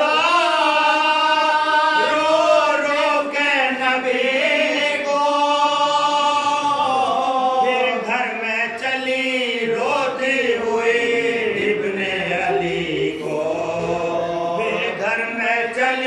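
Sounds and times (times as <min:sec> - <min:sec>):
men chanting an elegy: 0:00.0 - 0:16.0.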